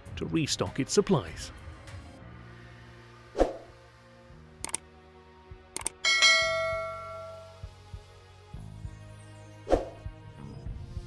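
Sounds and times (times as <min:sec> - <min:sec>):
bright bell ding: 0:06.0 - 0:07.7.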